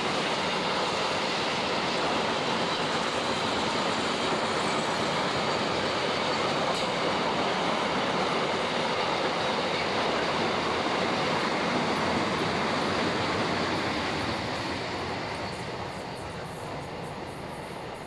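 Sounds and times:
train wheels on rail: 0.0 - 18.0.

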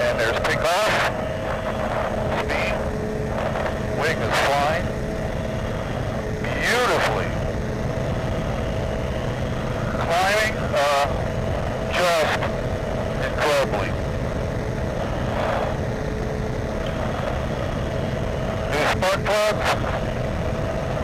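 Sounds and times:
aircraft engine droning: 0.0 - 21.0.

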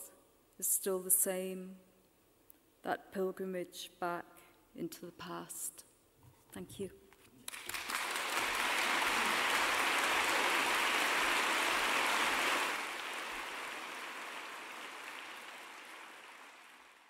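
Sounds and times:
audience applauding: 7.5 - 17.0.

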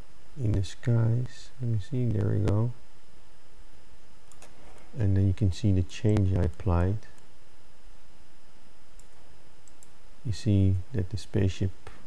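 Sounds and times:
background hiss: 0.0 - 12.0
computer mouse clicks: 4.3 - 4.9, 9.0 - 10.0.

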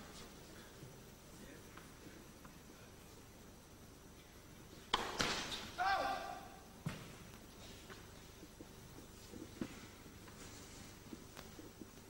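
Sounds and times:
line judge shouting: 5.8 - 6.6.

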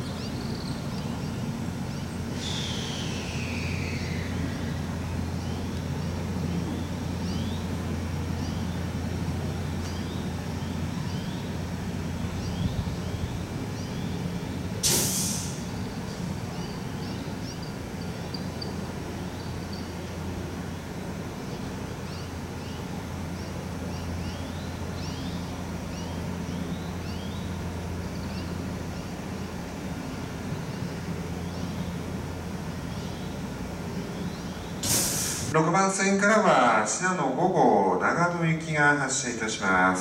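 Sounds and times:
small birds chirping: 0.0 - 14.8, 15.5 - 35.1
electric train humming: 0.0 - 40.0.

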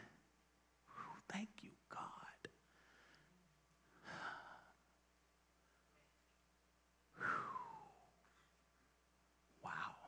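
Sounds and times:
person whispering: 0.9 - 2.6, 9.6 - 10.0.

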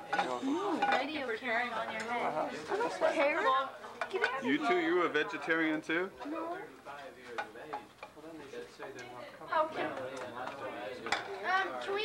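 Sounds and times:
serving spoons scraping dishes: 0.0 - 1.2.

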